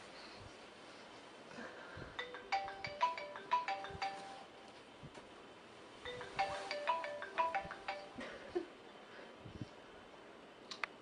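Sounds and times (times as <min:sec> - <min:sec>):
mobile phone ringtone: 0:02.2 - 0:04.6, 0:06.0 - 0:08.3.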